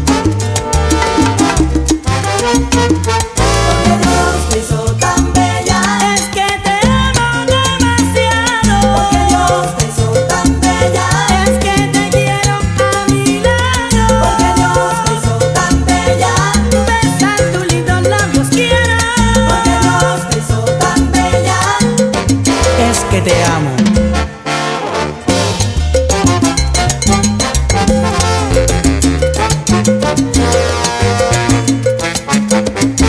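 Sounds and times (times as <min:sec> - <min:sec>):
salsa band music: 0:00.0 - 0:33.0.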